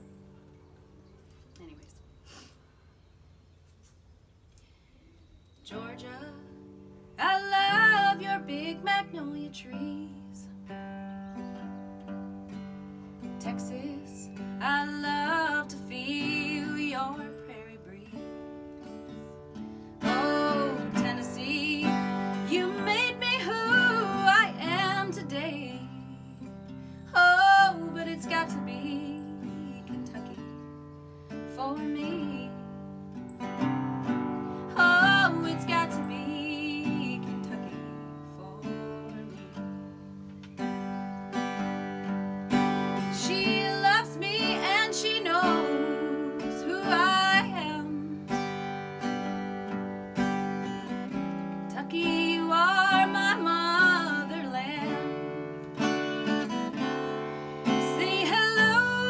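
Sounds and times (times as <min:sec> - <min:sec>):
woman singing country song: 0:05.6 - 0:59.0
acoustic guitar strumming: 0:05.7 - 0:59.0.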